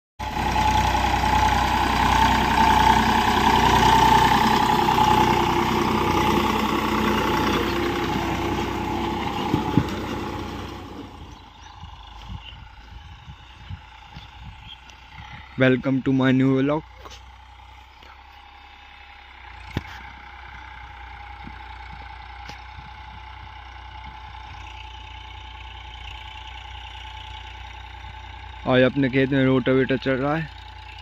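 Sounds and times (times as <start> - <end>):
tractor diesel engine under load: 0.2 - 31.0.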